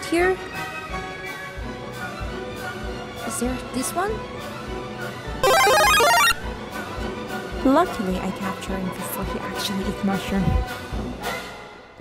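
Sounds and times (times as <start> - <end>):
video game power-up jingle: 5.4 - 6.4.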